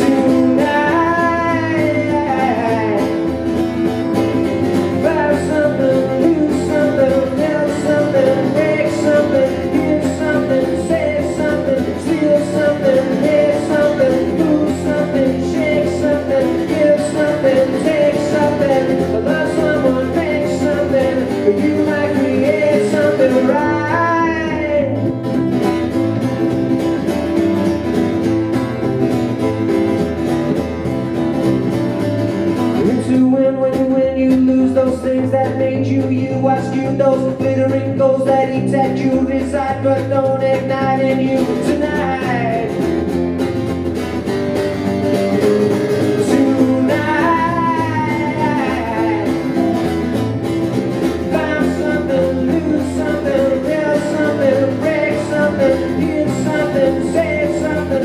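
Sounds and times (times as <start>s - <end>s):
plucked double bass: 0.0s - 58.0s
strummed acoustic guitar: 0.0s - 58.0s.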